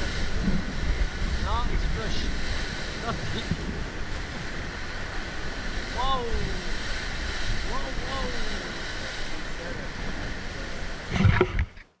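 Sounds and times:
wind buffeting microphone: 0.0s - 11.9s
sea noise: 0.0s - 12.0s
wind: 0.0s - 12.0s.

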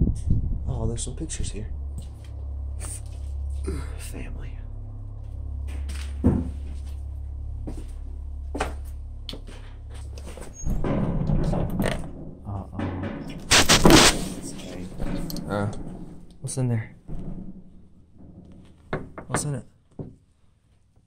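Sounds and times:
metal door clank and scrape: 9.5s - 19.5s.

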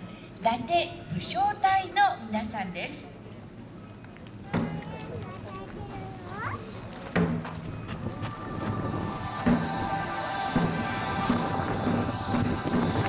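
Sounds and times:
murmur of seated crowd: 2.1s - 13.0s
heavy drum hits: 7.1s - 7.8s, 8.7s - 13.0s.

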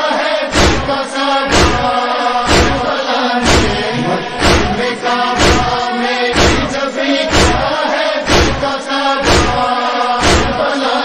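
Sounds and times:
rhythmic chest slaps: 0.0s - 11.0s
man chanting a lament: 0.5s - 11.0s.

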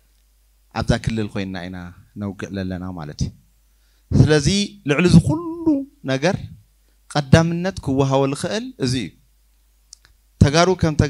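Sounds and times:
man speaking into a microphone: 0.8s - 3.4s, 4.1s - 9.2s, 10.4s - 11.0s
faint click: 9.9s - 10.2s.

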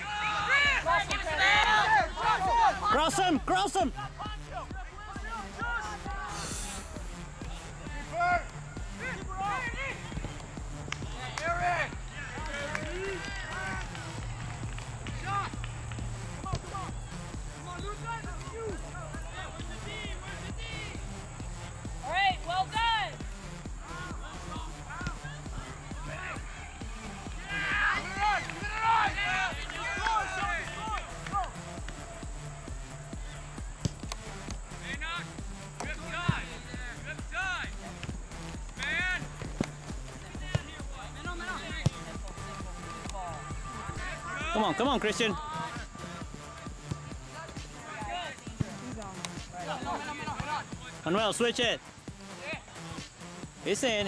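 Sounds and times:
distant shouting voices: 0.0s - 51.5s.

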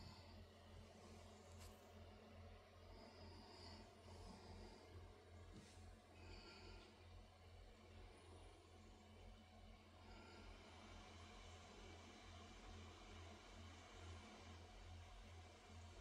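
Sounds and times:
faint low hum and hiss: 0.0s - 16.0s.

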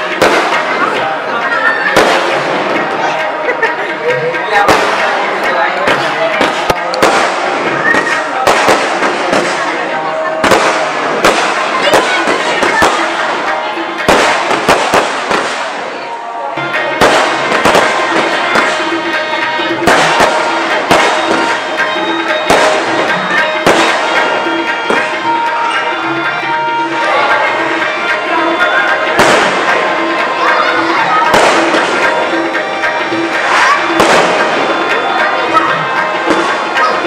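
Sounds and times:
fireworks bangs and crackles: 0.0s - 37.0s.

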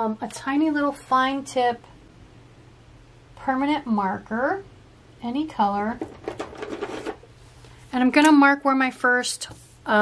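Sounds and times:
objects clicking and clattering on desk: 6.0s - 7.2s.

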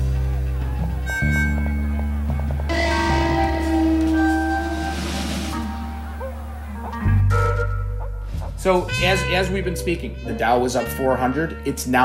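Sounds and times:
background music with bass: 0.0s - 12.0s
hissing swell: 2.7s - 6.8s.

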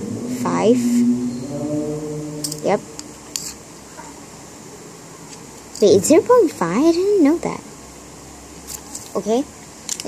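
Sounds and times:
person humming a sustained note: 0.0s - 3.7s.

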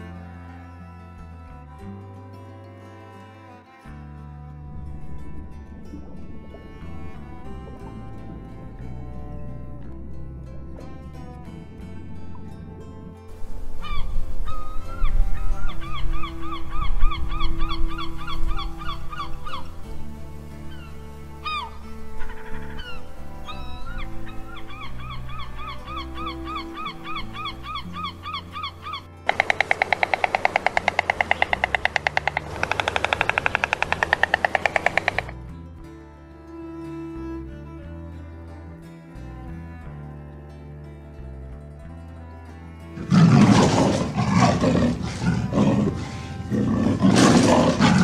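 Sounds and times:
soft background music: 0.0s - 48.0s
gulls calling: 4.8s - 35.4s, 43.0s - 48.0s
stork clattering bill: 15.7s - 35.4s.

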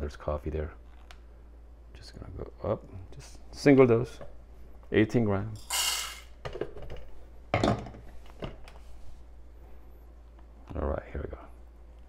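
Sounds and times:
coffee beans rattling: 5.6s - 6.4s.

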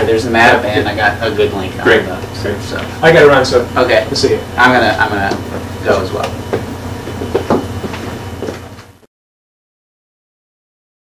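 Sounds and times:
low room hum: 0.0s - 9.1s.

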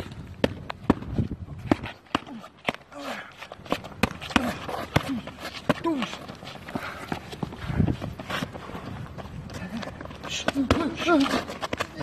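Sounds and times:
footfalls on pavement: 0.0s - 12.0s.

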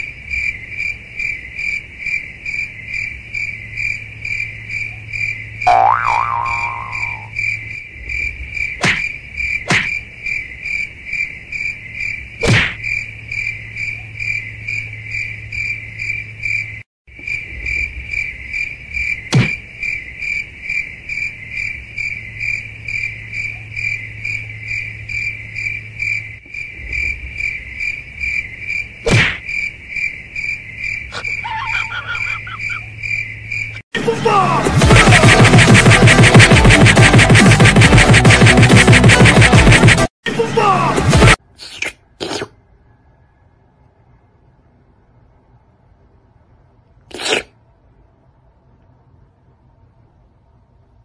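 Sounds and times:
cricket-like chirping: 0.0s - 33.8s.

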